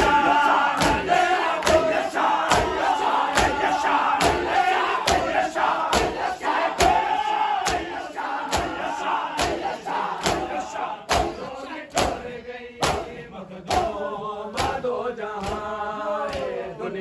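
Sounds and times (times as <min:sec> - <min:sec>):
crowd of men chanting: 0:00.0 - 0:17.0
hands slapping bare chests: 0:00.8 - 0:12.2.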